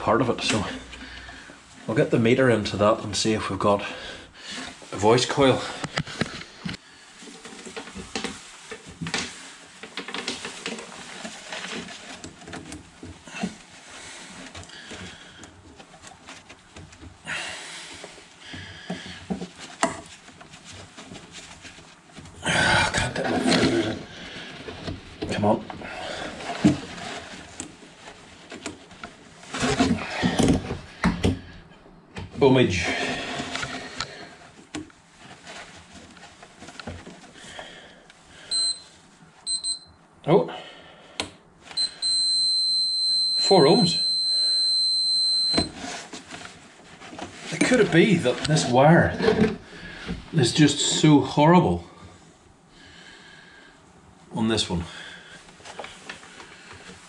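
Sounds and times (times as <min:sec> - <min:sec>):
rustling and knocks of handling: 0:00.0 - 0:39.6, 0:45.4 - 0:52.7, 0:53.5 - 0:57.0
multimeter buzzer beeping: 0:38.5 - 0:38.8, 0:39.5 - 0:39.9, 0:41.8 - 0:45.7.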